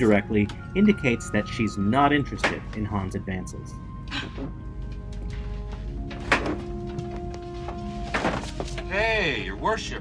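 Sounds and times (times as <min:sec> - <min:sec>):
sustained musical notes: 0:00.0 - 0:10.0.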